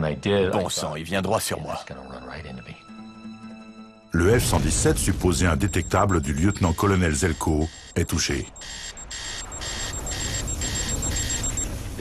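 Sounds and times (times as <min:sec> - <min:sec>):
electronic warning alarm beeping: 0:04.4 - 0:11.8.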